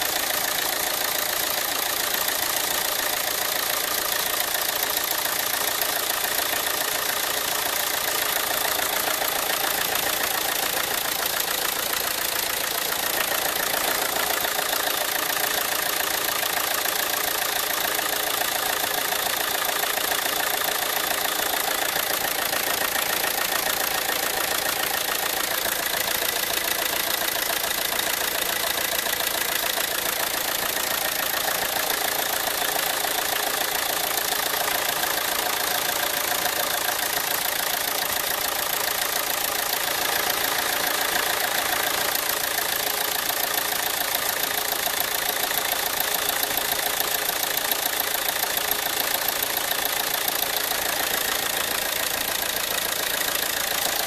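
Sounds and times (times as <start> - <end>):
diesel engine idling: 0.0 - 54.0.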